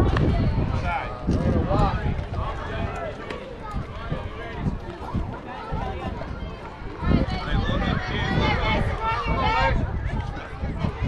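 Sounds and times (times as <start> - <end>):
people talking: 0.0 - 11.0
wind rumble on microphone: 0.0 - 11.0.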